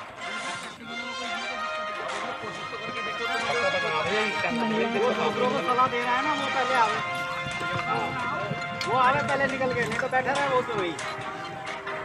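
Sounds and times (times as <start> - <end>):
background music: 0.0 - 12.0
bullock cart moving on dirt: 0.0 - 12.0
hooves clopping: 0.0 - 12.0
faint voices: 0.1 - 12.0.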